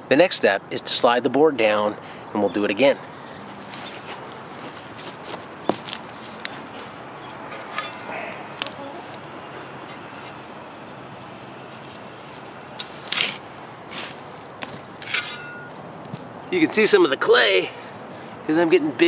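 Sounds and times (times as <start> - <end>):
knocks and steps on wooden board: 3.7 - 6.6
spade scraping into soil: 7.5 - 8.2, 12.8 - 14.2, 15.0 - 15.7.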